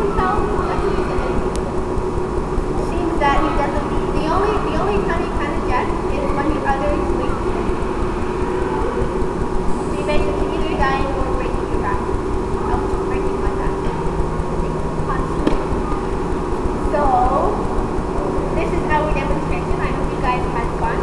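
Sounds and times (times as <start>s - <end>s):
loud steady rumble and hum: 0.0s - 21.0s.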